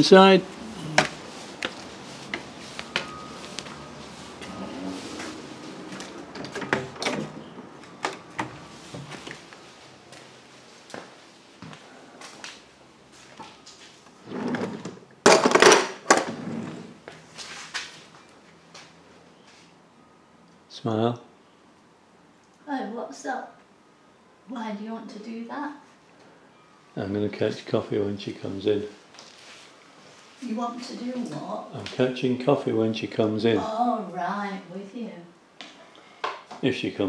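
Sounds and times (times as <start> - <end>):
footsteps: 0.5 - 6.6, 7.6 - 14.0.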